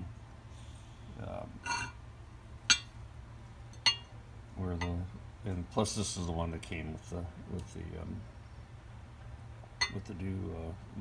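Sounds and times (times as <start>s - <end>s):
metal plates clinking: 1.6s - 2.0s, 2.7s - 3.0s, 3.8s - 4.1s.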